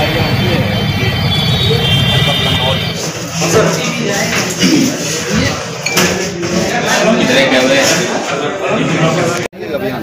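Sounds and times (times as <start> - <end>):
vehicle engine running: 0.0 - 3.4
people talking: 0.0 - 10.0.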